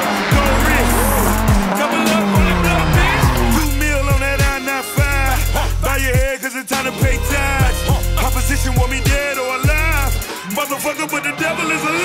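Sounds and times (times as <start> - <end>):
car engine running: 0.0 - 4.4
hip-hop beat with deep bass: 0.0 - 12.0.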